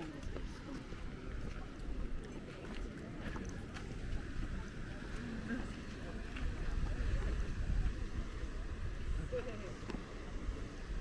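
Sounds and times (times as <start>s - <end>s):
wind buffeting microphone: 3.1s - 11.0s.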